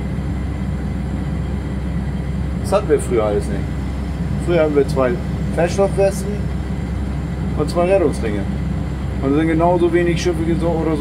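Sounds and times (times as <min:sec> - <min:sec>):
diesel engine droning: 0:00.0 - 0:11.0.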